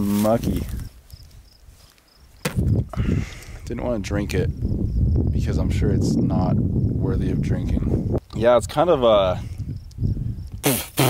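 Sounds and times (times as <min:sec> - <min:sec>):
high insect chirps: 0:00.3 - 0:03.5, 0:04.3 - 0:07.4, 0:09.6 - 0:11.0.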